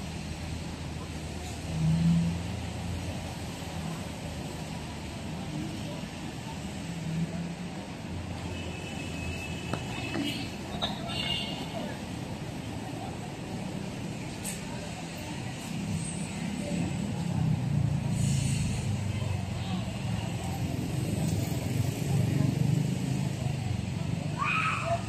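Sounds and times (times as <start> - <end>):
city road traffic rumble: 0.0 - 25.0
people's voices: 0.4 - 25.0.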